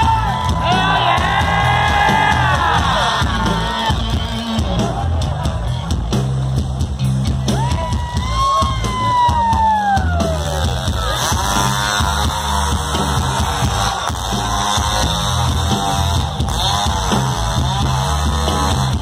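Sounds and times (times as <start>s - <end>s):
hard rock band playing live: 0.0s - 19.0s.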